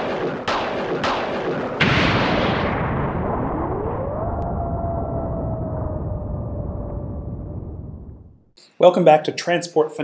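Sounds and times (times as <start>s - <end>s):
electric zap hits: 1.3s - 4.4s
rising tone: 2.4s - 8.5s.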